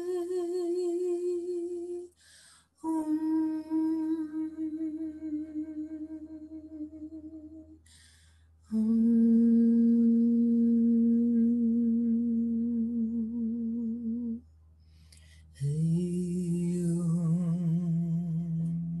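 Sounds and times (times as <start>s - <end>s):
woman humming: 0.0s - 2.2s, 2.8s - 7.8s, 8.7s - 14.4s, 15.5s - 19.0s.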